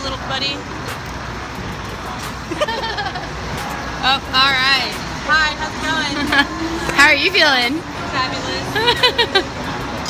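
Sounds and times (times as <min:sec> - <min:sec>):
bus engine rumbling: 0:00.0 - 0:10.0
traffic noise: 0:00.0 - 0:10.0.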